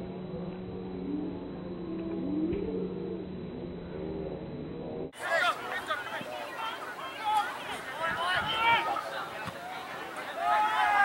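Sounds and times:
steady low hum: 0.0s - 5.2s
people shouting: 5.2s - 11.0s.

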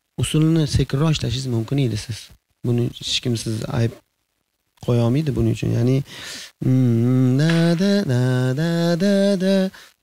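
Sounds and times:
man singing unaccompanied: 5.3s - 10.0s.

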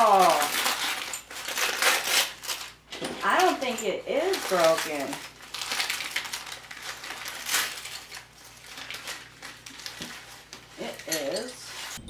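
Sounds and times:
wrapping crinkling: 0.0s - 12.0s.

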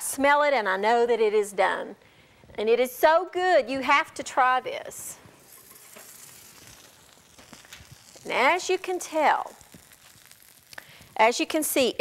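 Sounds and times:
food sizzling in a skillet: 4.9s - 12.0s.

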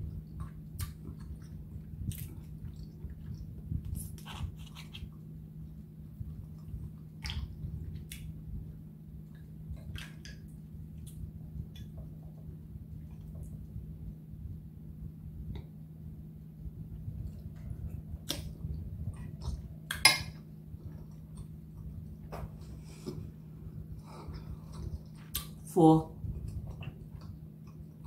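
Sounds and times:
low hum: 0.0s - 28.0s.

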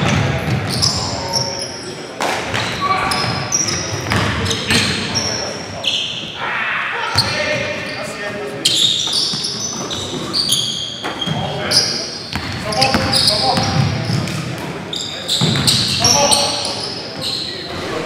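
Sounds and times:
sneakers squeaking: 0.0s - 6.4s, 7.0s - 18.0s
players calling out: 2.6s - 18.0s.

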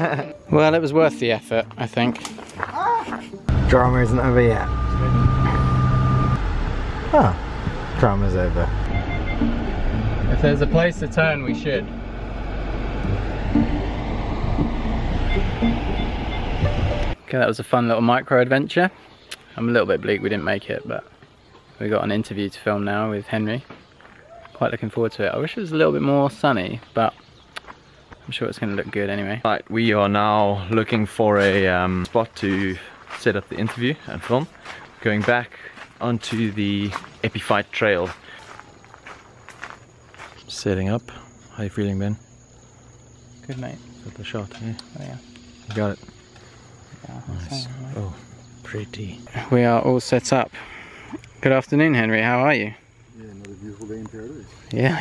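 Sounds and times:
footsteps on gravel: 2.2s - 3.4s, 23.6s - 24.6s, 30.9s - 40.6s
car engine and tyres rumbling: 3.5s - 17.2s.

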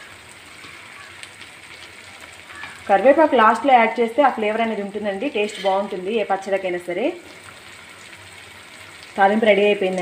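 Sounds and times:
vegetables sizzling in oil: 0.0s - 10.0s.

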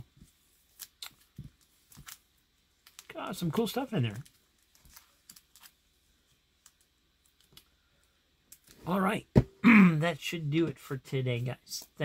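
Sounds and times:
man speaking: 3.1s - 4.3s, 8.8s - 12.0s.

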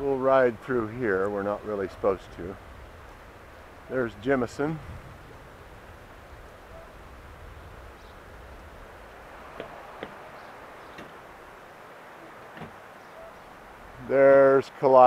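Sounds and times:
bicycle tyres rolling on dirt: 0.0s - 15.0s
wind on microphone: 0.5s - 14.2s.

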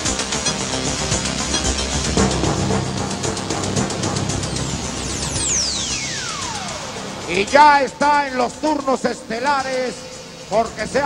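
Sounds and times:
falling whistling sweep: 0.0s - 9.4s
electronic entrance music: 0.0s - 11.0s.

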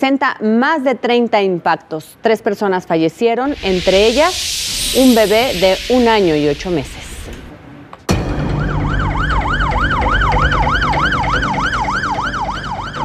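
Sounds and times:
siren yelping: 8.6s - 13.0s.

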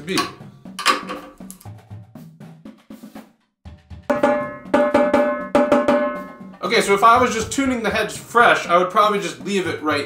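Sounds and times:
ringing tenor drum strokes: 4.1s - 7.4s.

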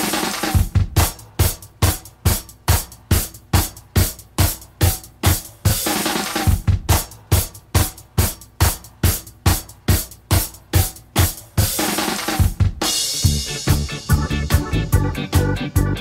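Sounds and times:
drum kit playing a beat: 0.0s - 16.0s.

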